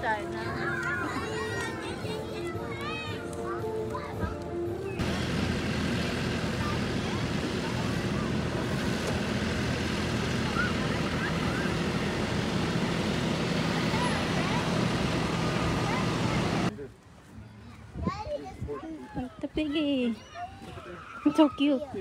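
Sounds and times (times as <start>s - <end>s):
tractor engine running: 4.9s - 16.7s
faint distant voices: 6.3s - 22.0s.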